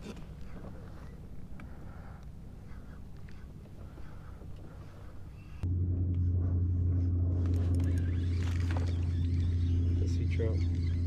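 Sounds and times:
outboard motor idling: 5.3s - 11.0s.

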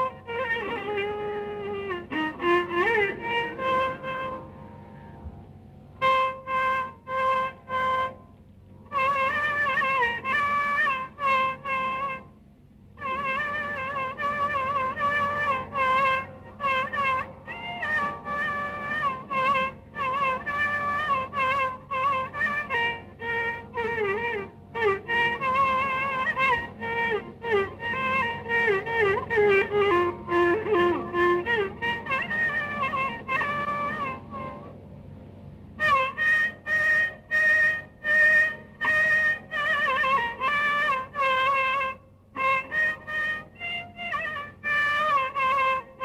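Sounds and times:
violin melody with sliding notes: 0.0s - 12.4s, 13.0s - 46.0s.

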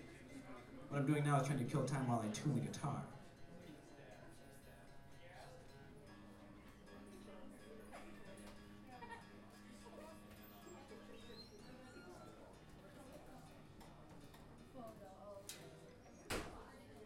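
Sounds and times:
audience murmur: 3.2s - 17.0s.

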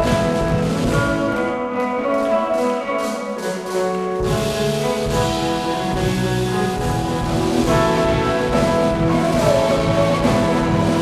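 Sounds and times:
keyboard held chords: 0.0s - 11.0s.

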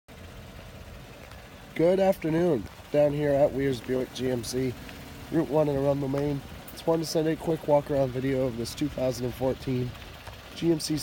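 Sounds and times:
low background rumble: 0.1s - 11.0s
man speaking: 1.8s - 11.0s.

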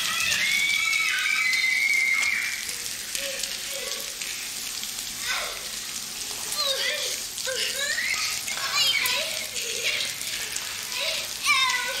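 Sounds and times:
girl squealing: 0.0s - 4.1s
shower spray hissing on tiles: 0.0s - 12.0s.

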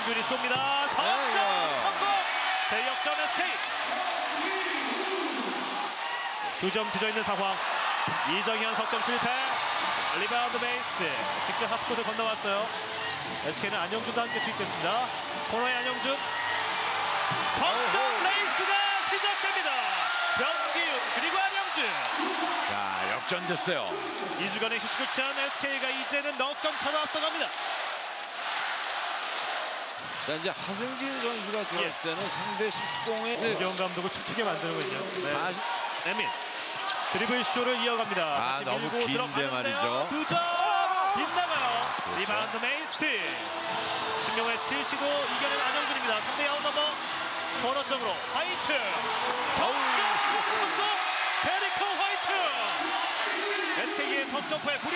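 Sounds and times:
crowd noise: 0.0s - 54.9s.

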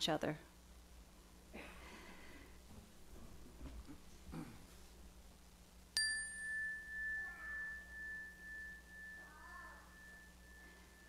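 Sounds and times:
meditation bell ringing: 6.0s - 11.0s.

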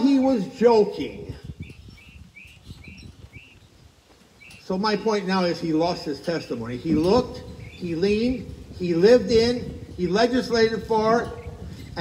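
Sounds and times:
small bird chirping: 1.4s - 4.7s, 6.7s - 8.1s.

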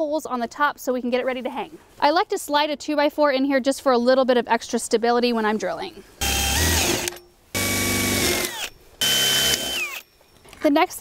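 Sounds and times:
drill boring through sheet metal: 6.2s - 10.0s.

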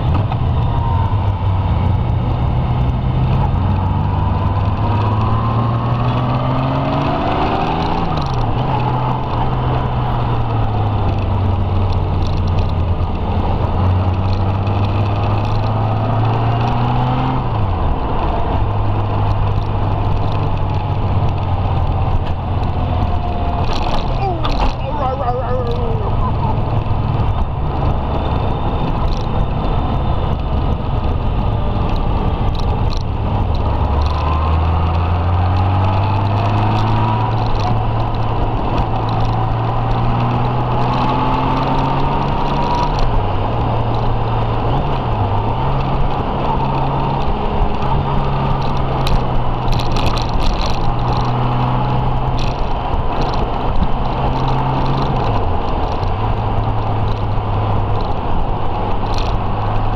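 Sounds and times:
wind rushing over microphone: 0.0s - 59.9s
motorcycle engine pulling: 18.4s - 59.9s.

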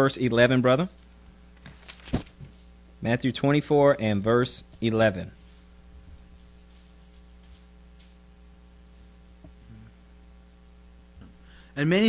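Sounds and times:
faint mains hum: 0.0s - 12.0s.

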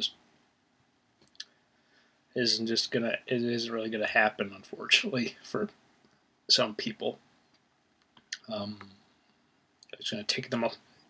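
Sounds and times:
faint mouth clicks: 1.2s - 1.6s
person speaking: 2.4s - 5.7s, 6.5s - 7.2s, 8.3s - 8.9s, 9.8s - 10.8s.

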